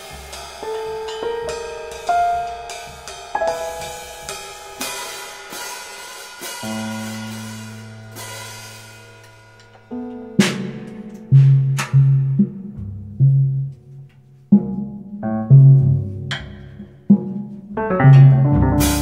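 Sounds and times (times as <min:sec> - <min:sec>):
keyboard chords: 0:00.0 - 0:05.6, 0:06.6 - 0:13.3, 0:17.7 - 0:19.0
loud cymbal crash: 0:00.0 - 0:10.0
cymbal and hi-hat strokes: 0:00.0 - 0:12.1.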